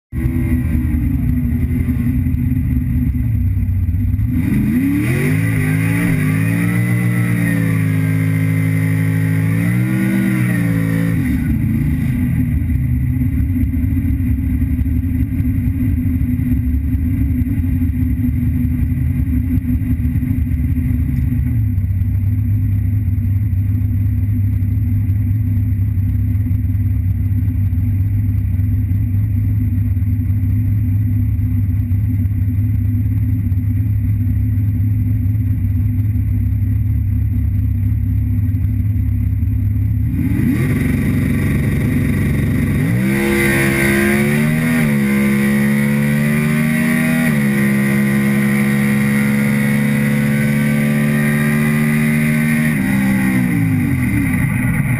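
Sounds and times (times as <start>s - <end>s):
drag car engine idling and revving: 0.1s - 54.9s.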